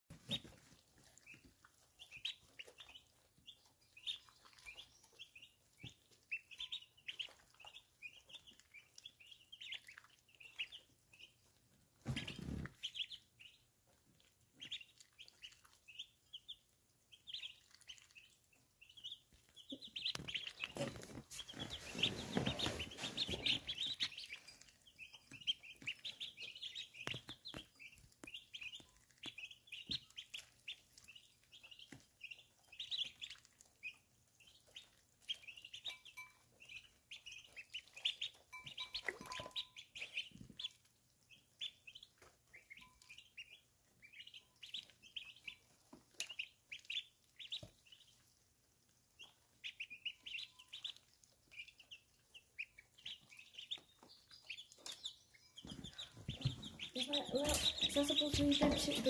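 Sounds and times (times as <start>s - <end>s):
ducklings peeping: 0.1s - 59.0s.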